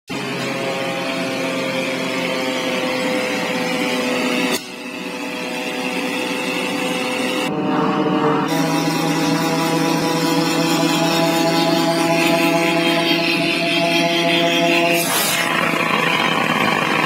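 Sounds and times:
rotary engine running: 0:00.2 - 0:17.0.

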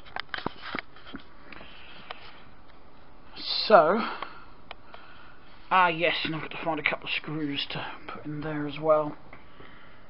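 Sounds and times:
room hiss: 0:01.3 - 0:10.0.

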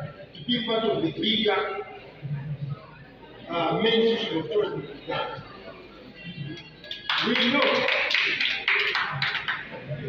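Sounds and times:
audience clapping: 0:06.9 - 0:09.8.

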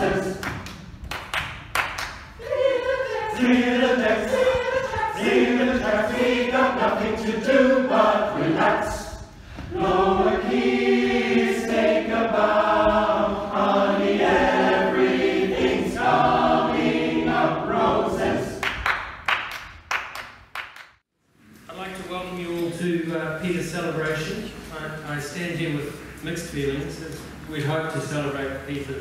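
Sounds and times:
choir singing: 0:00.0 - 0:00.7, 0:02.4 - 0:18.7.

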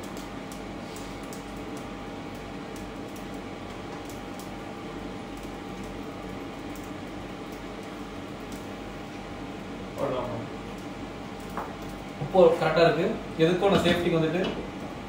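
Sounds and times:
kitchen fan humming: 0:00.0 - 0:15.0
pot of rice boiling: 0:00.0 - 0:15.0.

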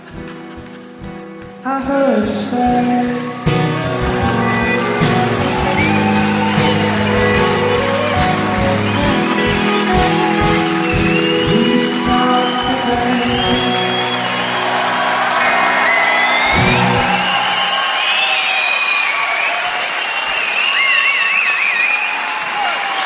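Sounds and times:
audience applauding: 0:00.0 - 0:01.7, 0:02.4 - 0:23.0
crowd cheering: 0:00.0 - 0:23.0
live band final chord: 0:02.4 - 0:18.1
whistling: 0:03.3 - 0:23.0.

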